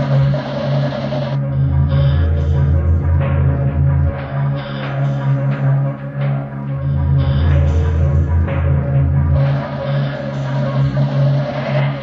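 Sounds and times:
electronic drone music: 0:00.0 - 0:12.0.

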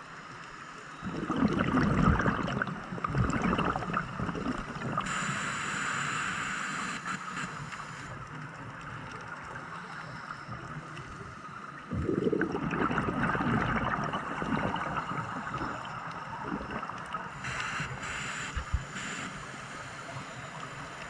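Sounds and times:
bubbling exhale: 0:01.0 - 0:05.4, 0:11.8 - 0:19.2
hissing regulator inhale: 0:05.0 - 0:08.2, 0:17.3 - 0:21.0.

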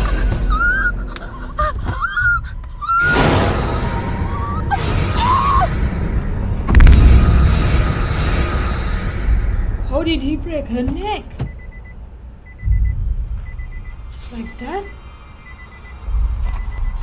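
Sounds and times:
tense music: 0:00.0 - 0:17.0
loud sudden hit: 0:03.0 - 0:09.9.

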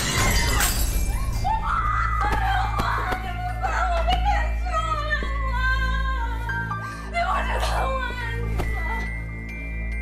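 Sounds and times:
household objects smashing: 0:00.0 - 0:01.4.

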